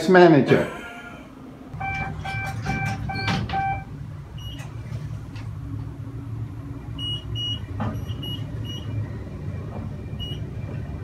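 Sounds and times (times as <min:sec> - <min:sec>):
city street traffic: 0:00.5 - 0:11.0
electronic beeper beeping: 0:01.8 - 0:04.6.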